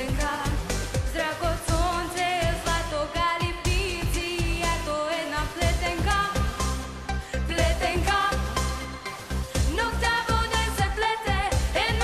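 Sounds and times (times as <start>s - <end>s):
backing track with dance beat: 0.0s - 12.0s
young woman singing pop song: 0.0s - 12.0s.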